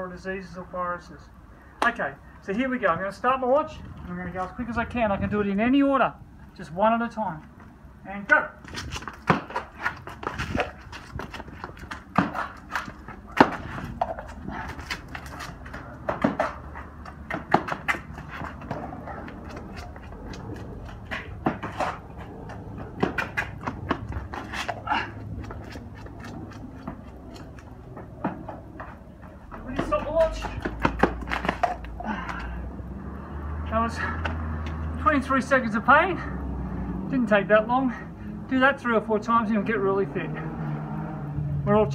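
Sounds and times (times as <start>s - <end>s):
running footsteps on concrete: 8.6s - 35.4s
man panting: 13.6s - 15.7s, 18.2s - 21.4s, 24.6s - 26.2s, 31.9s - 32.9s.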